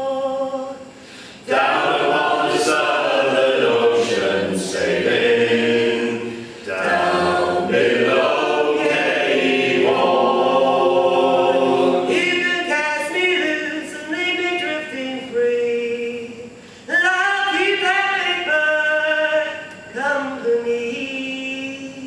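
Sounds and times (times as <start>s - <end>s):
three-part vocal harmony singing: 0.0s - 22.0s.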